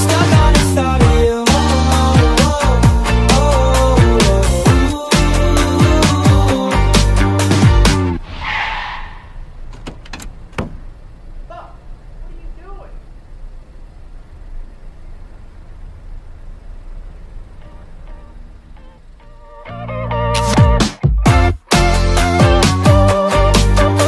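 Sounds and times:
song music: 0.0s - 8.5s, 19.4s - 24.0s
brief hiss: 8.2s - 9.5s
low steady rumble: 8.2s - 20.3s.

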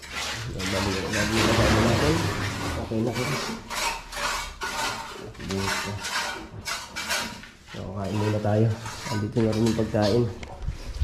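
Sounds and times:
rough scraping strokes: 0.0s - 11.0s.

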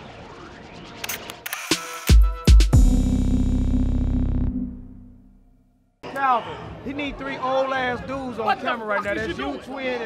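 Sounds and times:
camera shutter clicks: 1.0s - 2.0s.

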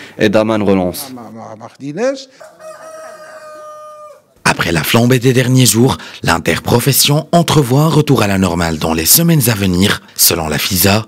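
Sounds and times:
rooster crowing: 2.4s - 4.4s.

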